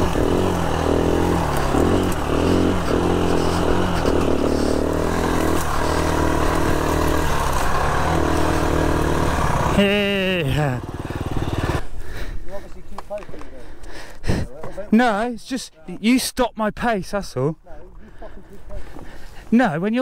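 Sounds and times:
dirt bike engine revving: 0.0s - 11.9s.

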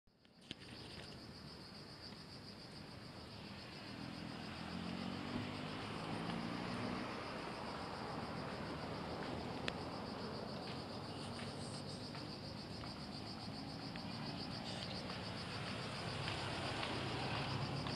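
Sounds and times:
insects trilling: 0.4s - 17.9s.

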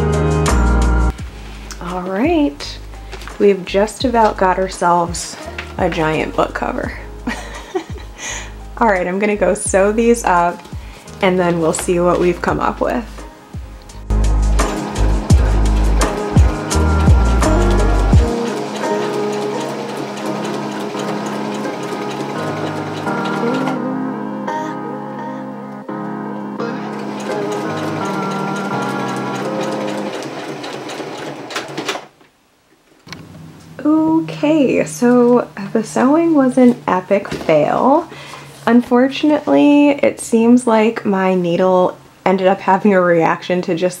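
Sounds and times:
background music: 0.0s - 31.6s
sewing machine stitching: 14.5s - 23.8s, 26.8s - 32.1s.

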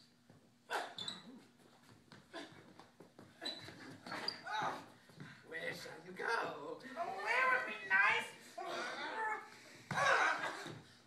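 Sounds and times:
shoe squeaks on hard floor: 0.7s - 4.9s.

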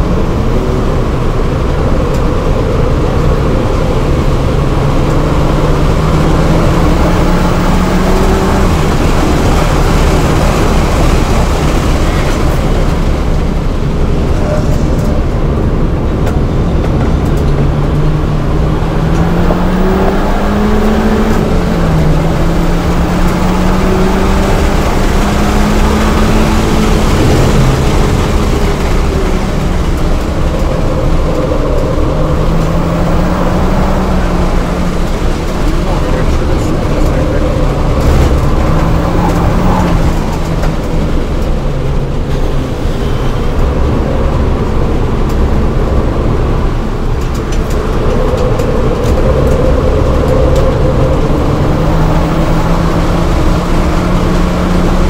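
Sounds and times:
car engine accelerating: 0.0s - 55.0s
wind and road noise: 0.0s - 55.0s.

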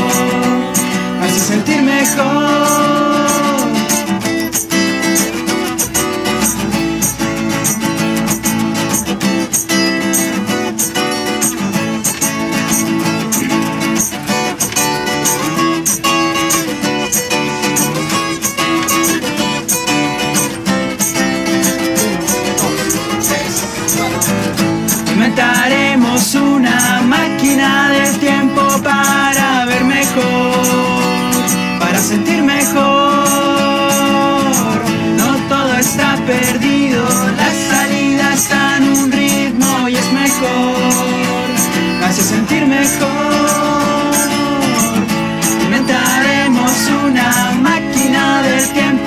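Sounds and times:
person singing: 0.0s - 10.4s, 20.3s - 49.0s
acoustic guitars strumming and picking: 0.0s - 49.0s.

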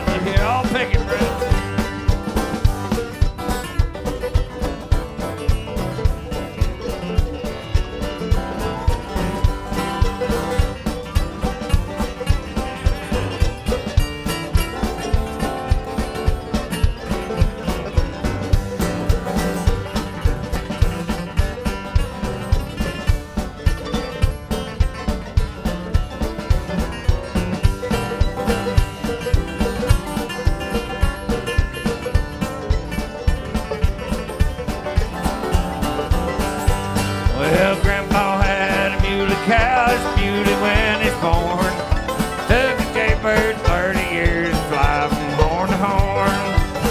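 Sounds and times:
bluegrass band playing: 0.0s - 46.9s
drum kit beat: 0.0s - 46.9s.

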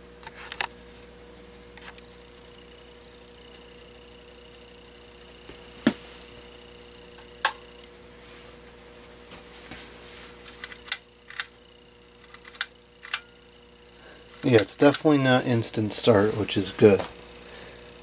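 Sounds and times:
faint electrical hum: 0.0s - 18.0s
metal bead pull chain clicking: 10.6s - 11.5s, 12.2s - 13.3s
sharp clicks: 10.6s - 11.5s, 12.2s - 13.3s.

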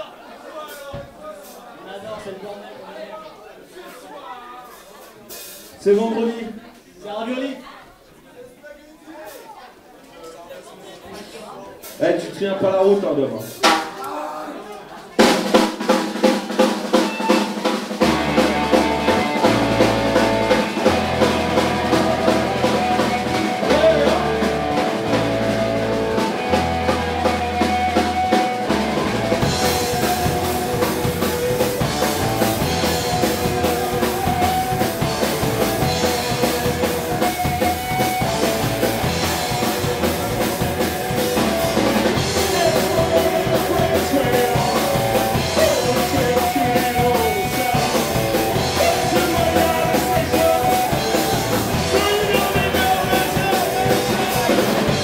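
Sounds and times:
drum kit playing: 13.5s - 14.0s, 15.2s - 55.0s
live punk rock band: 15.1s - 55.0s
bass guitar notes: 18.0s - 55.0s.

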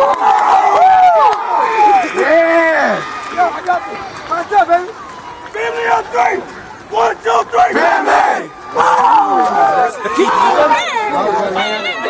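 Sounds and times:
players shouting and whooping: 0.0s - 12.0s.

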